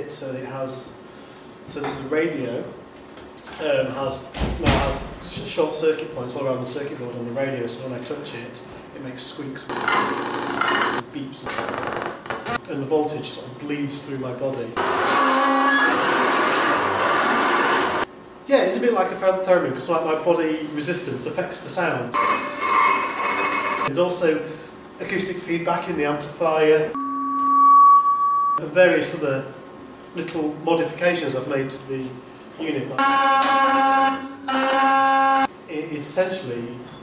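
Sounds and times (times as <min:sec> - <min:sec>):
loud steady electronic buzz: 0:14.8 - 0:18.1, 0:22.1 - 0:23.9, 0:33.0 - 0:35.5
faint steady electronic whines: 0:22.1 - 0:24.0
thin high tone: 0:27.0 - 0:28.6.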